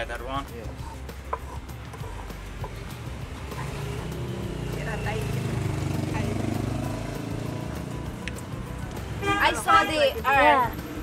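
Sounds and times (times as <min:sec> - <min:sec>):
road traffic engine hum: 0:00.0 - 0:11.0.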